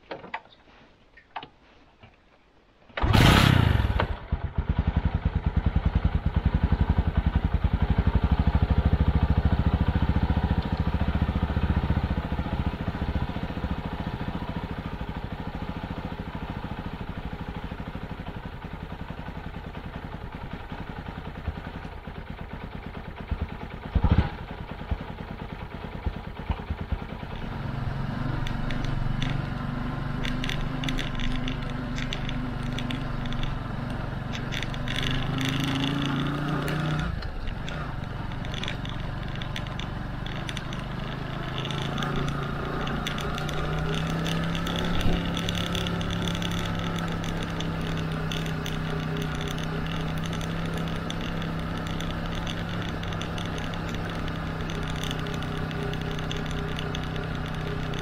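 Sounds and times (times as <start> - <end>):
small motorcycle engine idling: 3.0 - 58.0.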